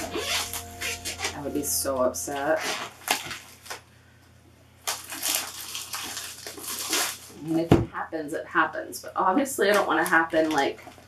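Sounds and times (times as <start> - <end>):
plastic film rustling and crinkling: 2.3 - 3.9, 4.8 - 7.7, 9.6 - 11.0.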